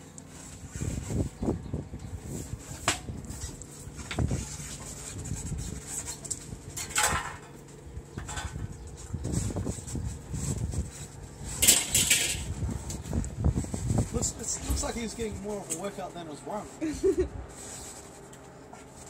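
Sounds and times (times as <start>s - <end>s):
couch frame scraping: 0.2s - 1.6s, 2.2s - 19.0s.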